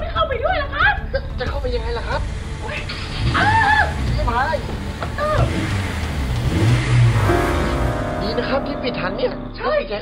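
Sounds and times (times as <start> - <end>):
car engine revving: 2.2 - 8.8.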